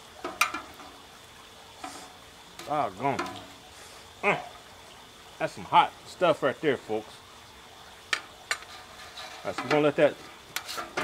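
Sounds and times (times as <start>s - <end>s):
water dribbling from basket: 0.0s - 11.0s.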